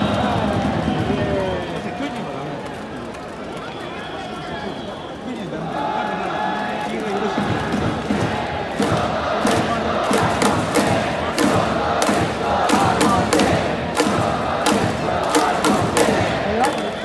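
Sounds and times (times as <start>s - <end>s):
crowd chanting in unison: 5.4s - 17.0s
sharp claps or drum hits: 7.2s - 17.0s
music: 7.5s - 17.0s.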